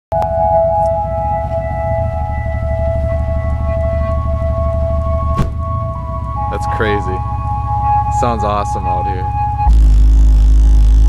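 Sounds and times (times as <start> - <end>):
electronic pop music from car stereo: 0.2 - 11.0.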